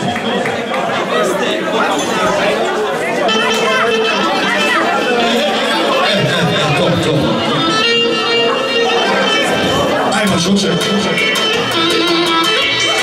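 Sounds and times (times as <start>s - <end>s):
crowd chatter in large hall: 0.0s - 13.0s.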